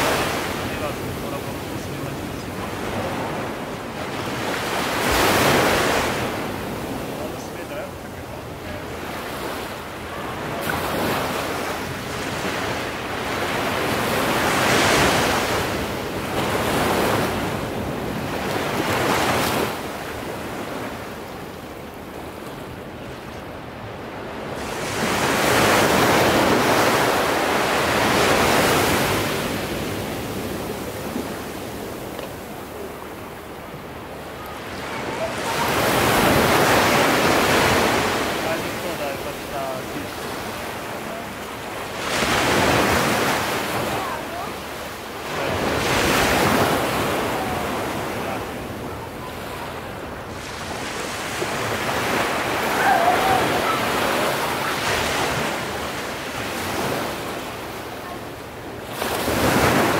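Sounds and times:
ocean surf breaking on cliffs: 0.0 - 59.9.

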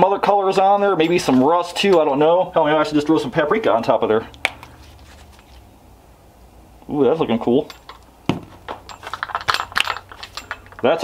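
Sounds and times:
small objects clicking and rattling: 7.6 - 11.0.

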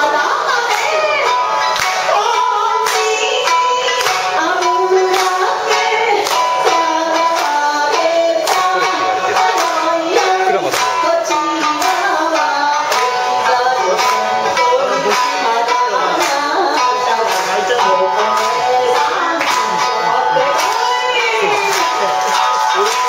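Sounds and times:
group of voices singing: 0.0 - 23.0
hand claps: 0.0 - 23.0
shamisen played with plectrum: 0.0 - 23.0.

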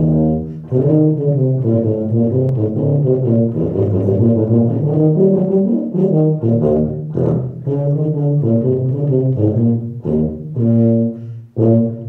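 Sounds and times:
tuba playing low notes: 0.0 - 12.0.

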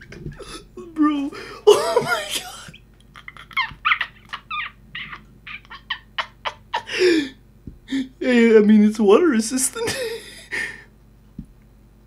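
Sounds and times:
person laughing: 0.0 - 8.1, 9.8 - 10.8.

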